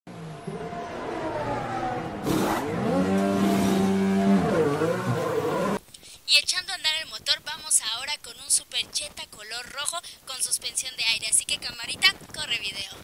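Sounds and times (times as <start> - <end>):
race car engine running: 0.1 - 5.8.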